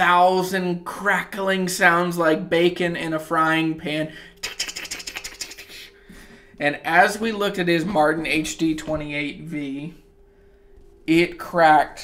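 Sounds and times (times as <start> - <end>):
rapid irregular crackling: 4.4 - 6.0.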